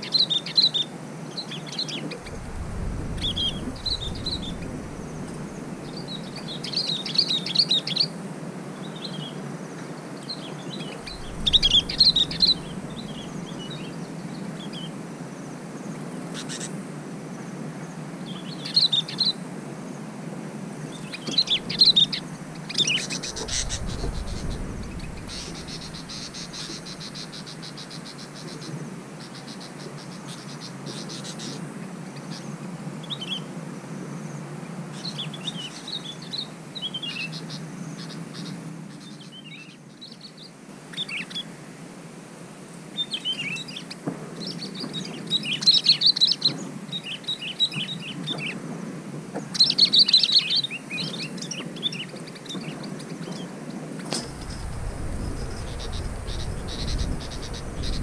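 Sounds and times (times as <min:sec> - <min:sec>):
birds chirping: 0:02.2 - 0:06.9, 0:10.8 - 0:14.9, 0:20.9 - 0:28.3, 0:54.2 - 0:58.0.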